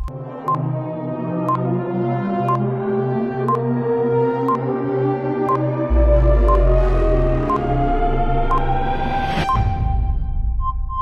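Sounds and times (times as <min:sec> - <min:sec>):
timer ticking with beeps: 0:00.0 - 0:00.6, 0:01.5 - 0:01.7, 0:05.5 - 0:07.8, 0:08.4 - 0:08.8, 0:09.4 - 0:09.8, 0:10.5 - 0:11.0
ambient synth music: 0:00.0 - 0:11.0
deep bass note: 0:05.9 - 0:09.4.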